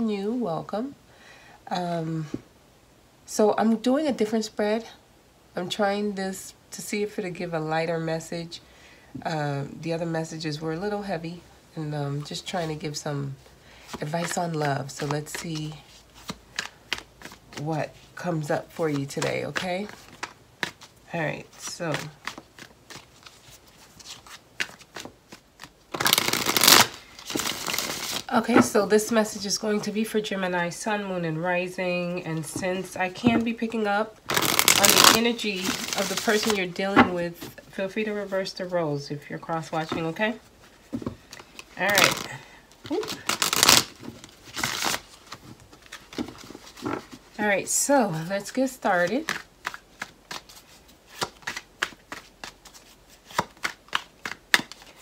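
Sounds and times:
cards tapping: 14.2 - 17.7, 18.7 - 20.9, 21.6 - 28.8, 49.0 - 55.0.

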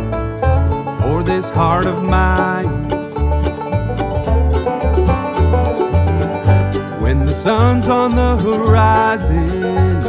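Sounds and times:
bluegrass band playing: 0.0 - 10.0
plucked banjo: 0.0 - 10.0.

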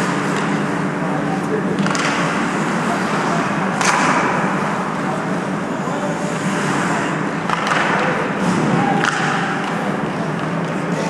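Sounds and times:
stick and puck knocks: 1.8 - 2.4, 3.8 - 4.4, 7.5 - 10.8.

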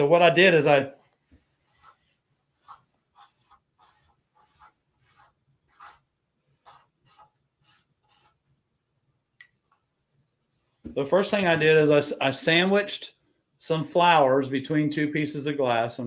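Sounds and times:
marker scratching on paper: 1.5 - 8.6.

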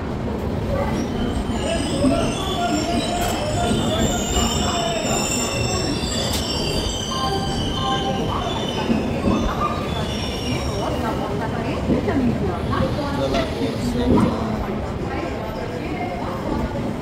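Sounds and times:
train wheels squealing on rails: 0.4 - 17.0.

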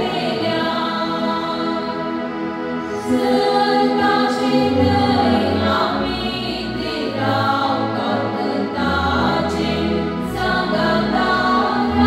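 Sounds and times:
women's choir singing a hymn: 0.0 - 12.0.

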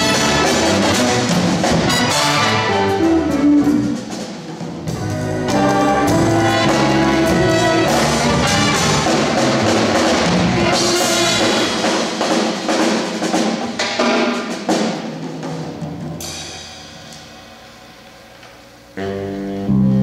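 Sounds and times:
drums hitting hard: 0.0 - 17.9
jazz big band playing: 0.0 - 20.0.

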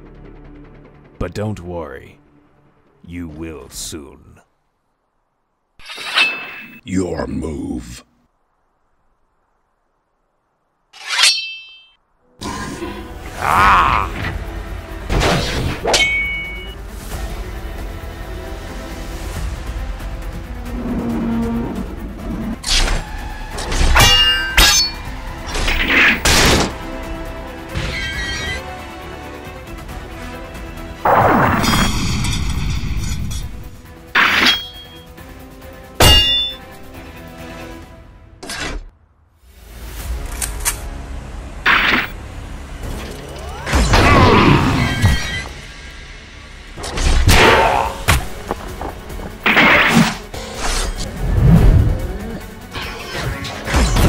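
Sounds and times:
dramatic music score: 0.0 - 4.0, 12.2 - 54.0
metal weapons clashing: 5.8 - 6.8, 11.0 - 12.0, 15.9 - 16.8, 23.8 - 26.4, 34.2 - 35.0, 36.0 - 36.7.

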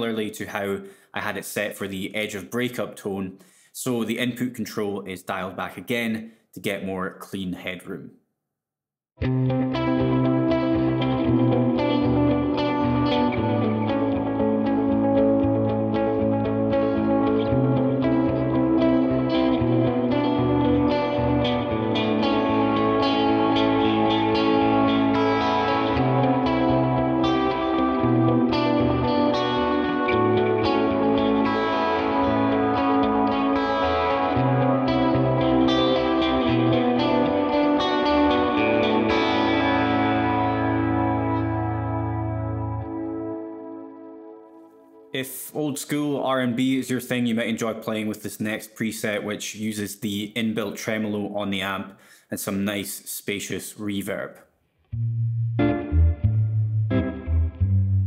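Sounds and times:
clean electric guitar with echoes: 9.2 - 45.1, 54.9 - 58.0.

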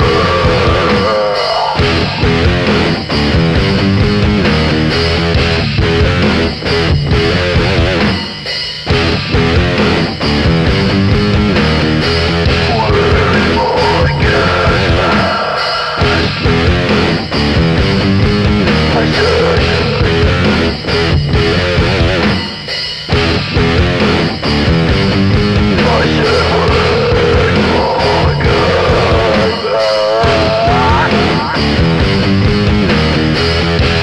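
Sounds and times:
drum kit: 0.0 - 34.0
electric guitar riff: 0.0 - 34.0
heavy metal song: 0.0 - 34.0.

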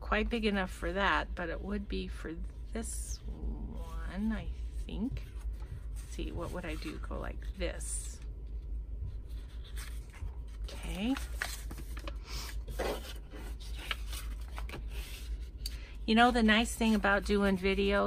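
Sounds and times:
paper rustling on a tabletop: 9.1 - 18.0.

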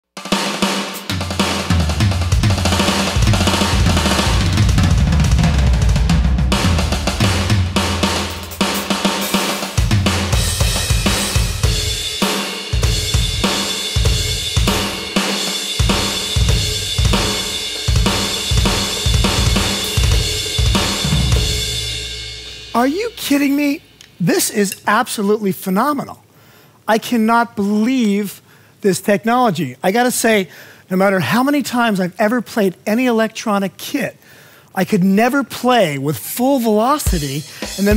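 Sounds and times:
electronic drum kit rock drumming: 0.2 - 24.6, 37.0 - 37.9.

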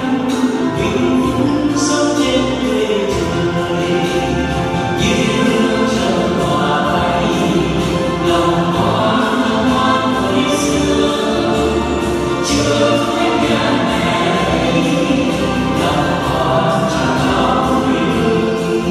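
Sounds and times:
instrumental accompaniment: 0.0 - 18.9
choir singing a hymn: 2.5 - 18.9.

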